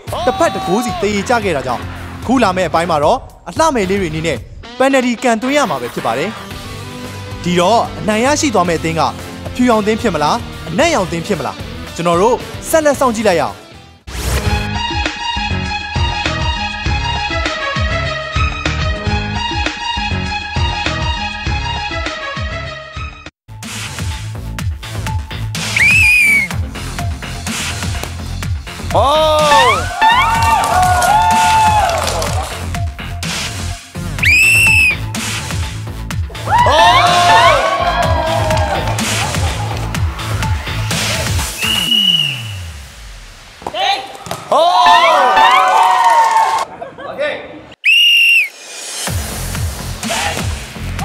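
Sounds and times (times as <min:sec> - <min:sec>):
background music with steady beat: 0:00.0 - 0:43.2, 0:48.5 - 0:51.0
whistle blown: 0:25.7 - 0:26.6, 0:34.2 - 0:35.1, 0:41.5 - 0:42.8, 0:47.8 - 0:48.6.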